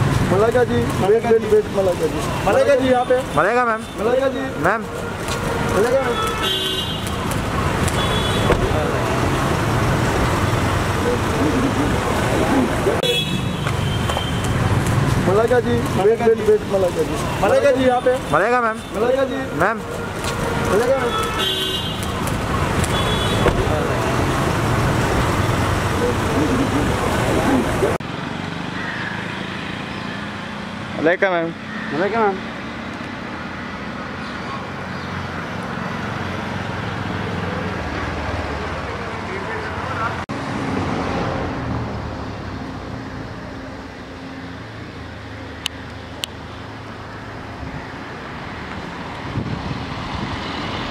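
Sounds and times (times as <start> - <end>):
street traffic: 0.0 - 50.9
voices calling out: 0.2 - 40.3
car horn toots: 5.9 - 7.1, 7.9 - 8.7, 13.0 - 14.5, 20.9 - 22.1, 22.8 - 23.6.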